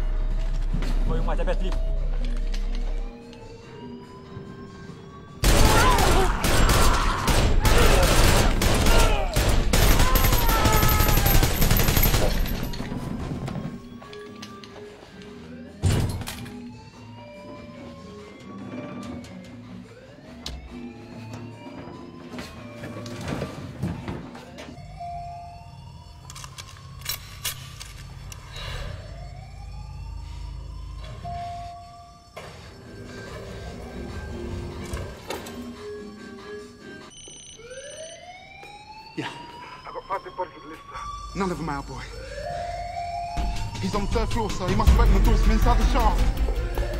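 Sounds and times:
siren-like wail: 0:00.4 - 0:46.9.

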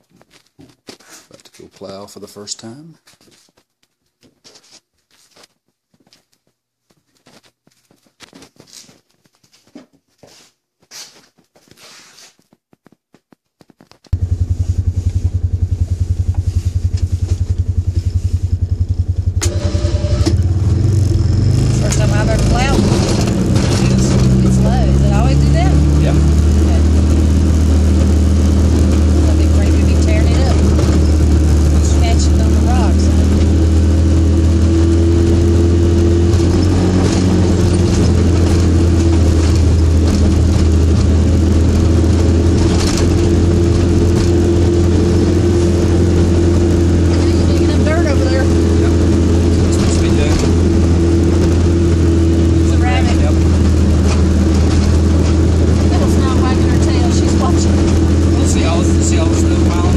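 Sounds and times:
utility vehicle engine running: 0:14.1 - 0:59.9.

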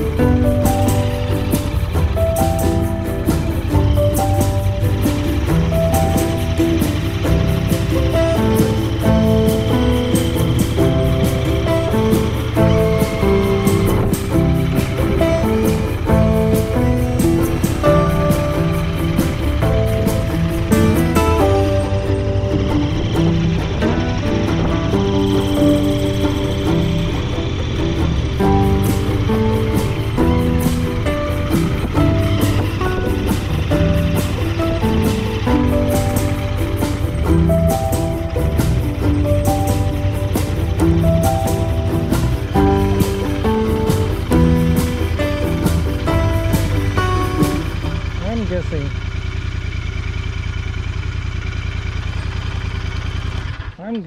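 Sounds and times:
background music with beat: 0:00.0 - 0:48.1
motorcycle engine running: 0:00.0 - 0:54.0.

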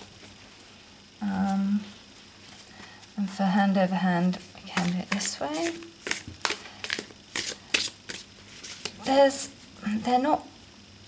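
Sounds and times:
cards being shuffled: 0:04.8 - 0:09.1.

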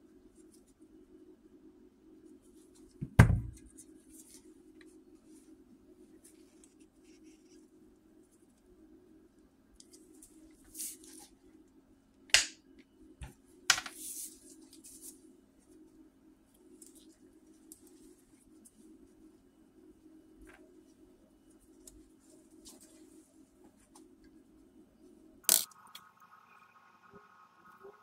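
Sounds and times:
low steady hum: 0:00.0 - 0:28.0.

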